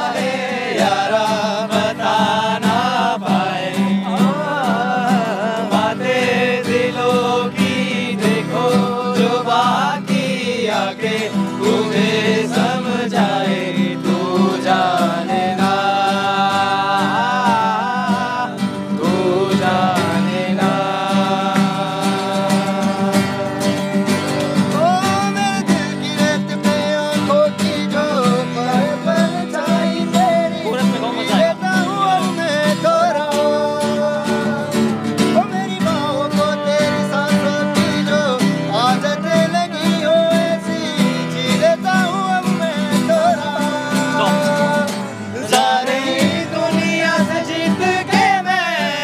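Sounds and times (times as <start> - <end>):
acoustic guitar strumming: 0.0 - 49.0
man singing: 0.0 - 49.0.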